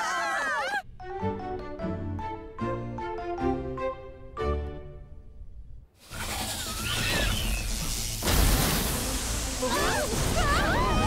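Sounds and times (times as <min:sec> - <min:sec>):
screaming: 0:00.0 - 0:00.8, 0:06.4 - 0:07.7, 0:09.6 - 0:11.0.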